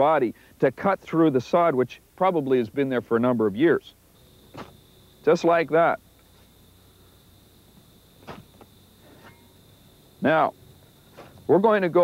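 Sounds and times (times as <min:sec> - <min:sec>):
background hiss and hum: 0:00.0 - 0:12.0
thin high whine: 0:04.1 - 0:12.0
spade crunching into sod: 0:04.4 - 0:04.8, 0:08.2 - 0:09.6, 0:11.0 - 0:11.6.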